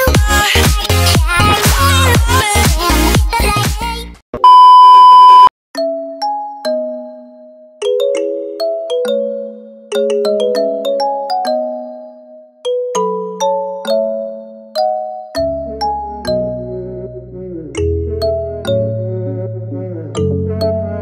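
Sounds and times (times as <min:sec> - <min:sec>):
chime-like melody: 0:05.8 - 0:16.6.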